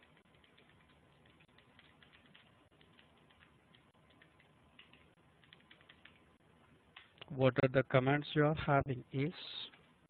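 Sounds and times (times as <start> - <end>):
typing on computer keyboard: 0.0 - 7.2.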